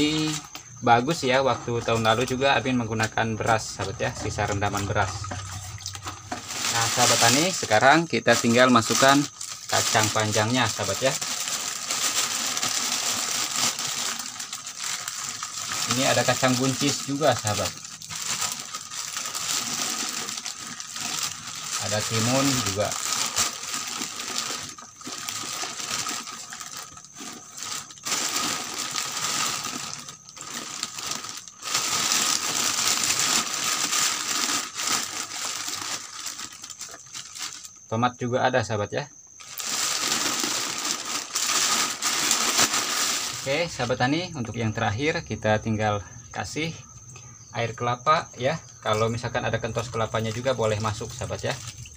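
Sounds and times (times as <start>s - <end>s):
beans rustling: 0.0s - 37.8s, 39.4s - 44.2s, 48.8s - 51.9s
plastic bag crinkling: 3.5s - 37.8s, 39.4s - 44.0s, 49.7s - 51.9s.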